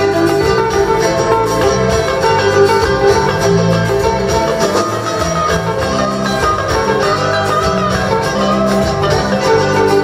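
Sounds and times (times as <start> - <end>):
bass line: 0.0 - 10.0
drum kit: 0.0 - 10.0
plucked string instrument melody: 0.0 - 10.0.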